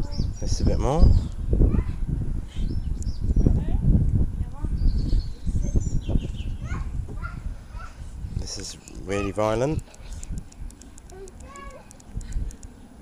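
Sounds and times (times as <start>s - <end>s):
microphone handling rumble: 0.0s - 11.3s
birds chirping: 0.0s - 13.0s
wind noise on microphone: 0.0s - 13.0s
children's voices: 1.6s - 2.2s, 4.4s - 10.0s, 11.0s - 12.0s.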